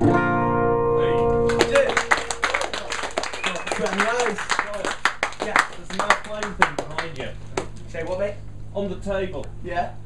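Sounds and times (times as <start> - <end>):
people talking: 1.1 - 2.2, 3.4 - 10.0
audience clapping: 1.4 - 7.8.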